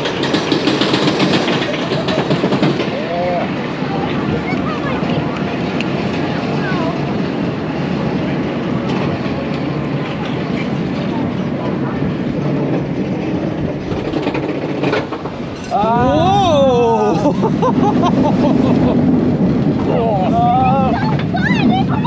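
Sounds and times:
roller coaster lift chain rattling: 0:00.0 - 0:22.0.

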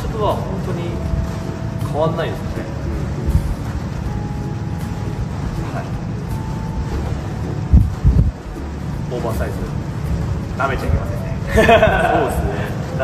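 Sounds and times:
low background rumble: 0:00.0 - 0:13.0.

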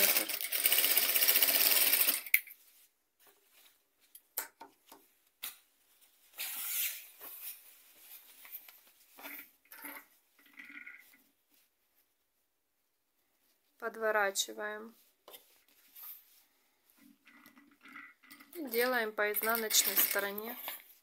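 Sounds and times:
sewing machine stitching: 0:00.0 - 0:02.3
fabric rustling: 0:02.5 - 0:04.2, 0:04.8 - 0:09.6, 0:14.9 - 0:17.0.

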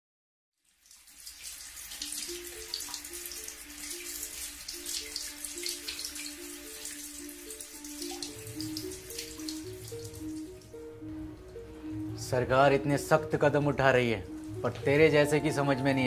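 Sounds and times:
dripping water: 0:00.6 - 0:13.4
slow soft melody: 0:01.9 - 0:16.0.

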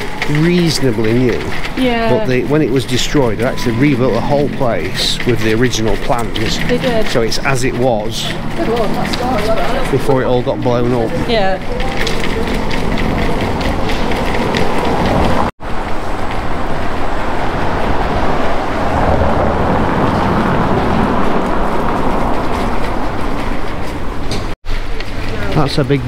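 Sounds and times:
buggy wheels rumbling over cobblestones: 0:00.0 - 0:26.0.

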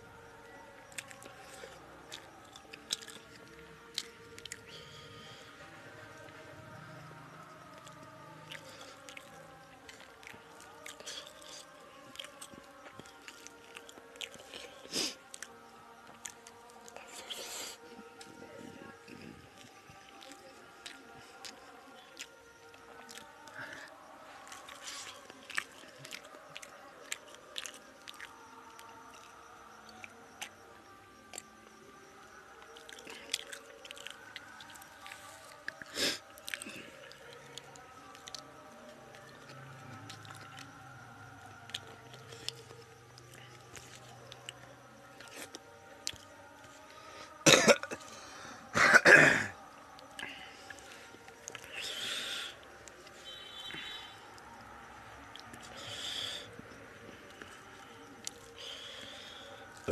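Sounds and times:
man clearing throat: 0:47.4 - 0:48.0, 0:48.7 - 0:49.5
man coughing: 0:47.5 - 0:48.0, 0:48.7 - 0:49.5.

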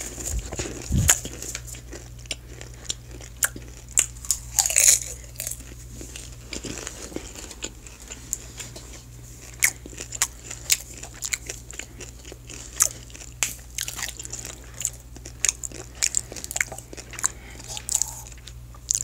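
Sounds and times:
popcorn chewing crunches: 0:00.0 - 0:19.0
steady low hum: 0:00.0 - 0:19.0.

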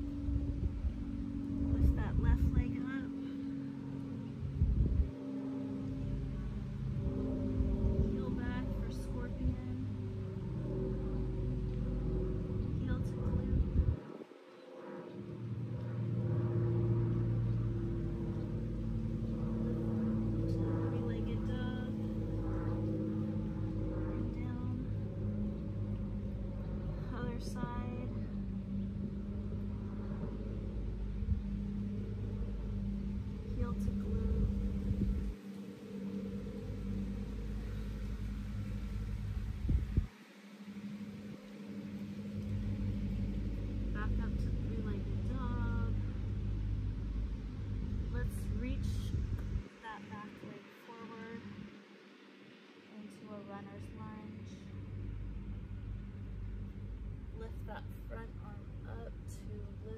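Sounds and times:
vehicle engine rumbling: 0:00.0 - 0:59.9.

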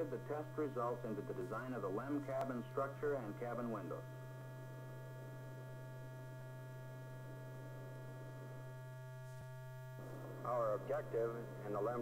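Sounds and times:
electrical hum: 0:00.0 - 0:12.0
faint high steady tones: 0:00.0 - 0:12.0.

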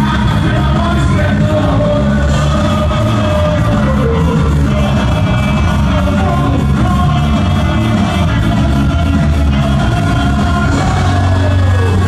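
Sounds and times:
electric guitar: 0:00.0 - 0:12.0
keyboard: 0:00.0 - 0:12.0
live ska band: 0:00.0 - 0:12.0
person singing: 0:00.0 - 0:12.0.

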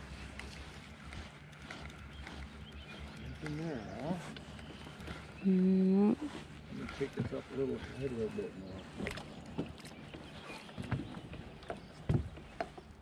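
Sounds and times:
person humming: 0:05.4 - 0:06.3.

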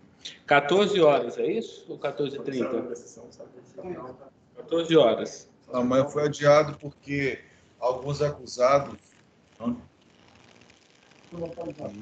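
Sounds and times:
faint video call line noise: 0:00.0 - 0:12.0.

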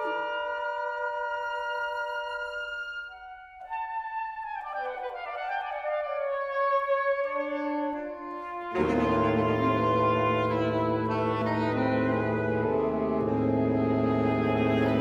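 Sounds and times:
saxophone quartet playing: 0:00.0 - 0:15.0.

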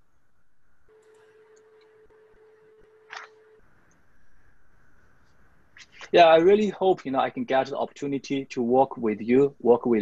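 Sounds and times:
faint steady tone: 0:00.0 - 0:10.0.

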